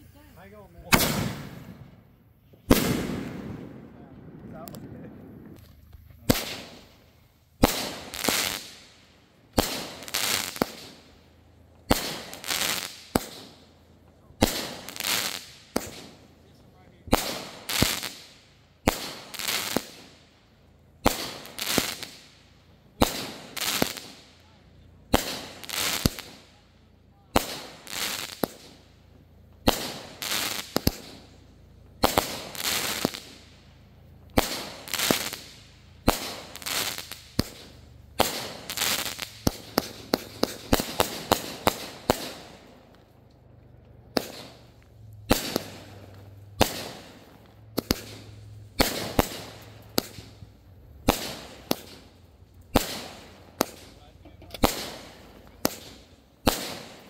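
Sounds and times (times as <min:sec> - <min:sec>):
fireworks banging: 0:00.0 - 0:20.3, 0:20.9 - 0:57.0
fireworks crackling: 0:00.0 - 0:57.0.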